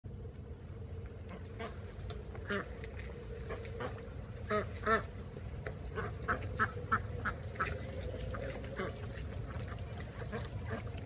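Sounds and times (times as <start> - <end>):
duck quacking: 1.3 - 1.8, 2.4 - 2.8, 3.4 - 5.2, 5.9 - 11.0.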